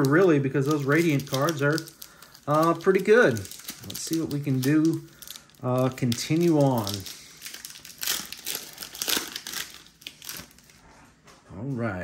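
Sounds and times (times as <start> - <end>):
foil wrapper crinkling: 0.0 - 10.8.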